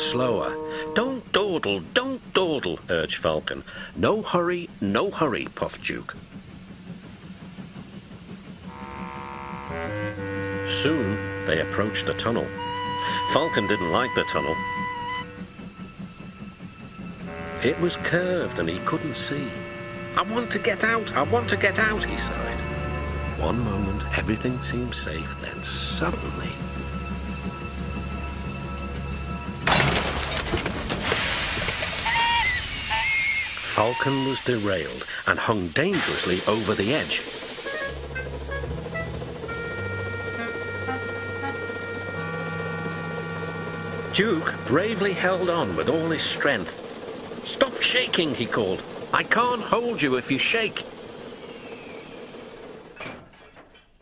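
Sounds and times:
tense music with low drone: 8.2 - 29.7, 37.4 - 50.1
loud crash: 29.6 - 32.1
rushing hiss: 31.0 - 39.5, 44.4 - 53.0.

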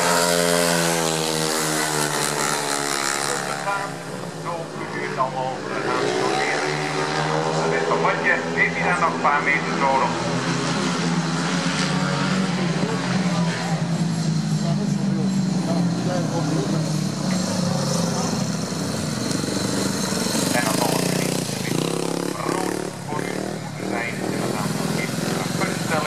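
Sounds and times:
motorcycle engines droning: 0.0 - 26.0.

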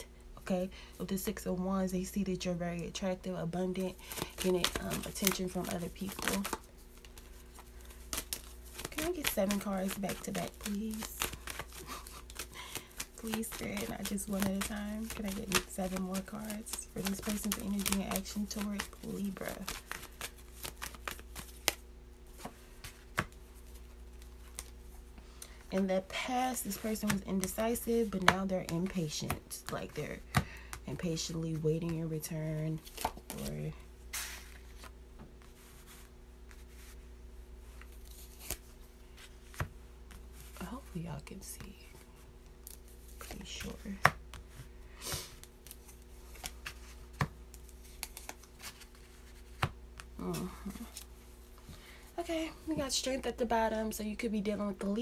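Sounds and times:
low steady hum: 0.0 - 55.0
cards being shuffled: 3.7 - 37.0, 37.6 - 51.7.

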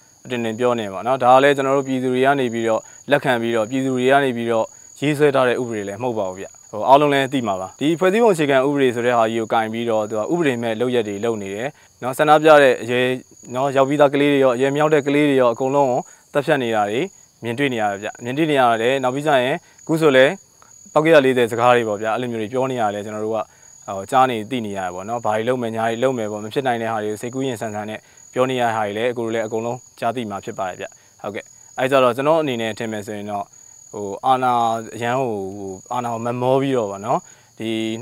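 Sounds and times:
high-pitched insect drone: 0.0 - 38.0
man talking: 0.2 - 38.0.

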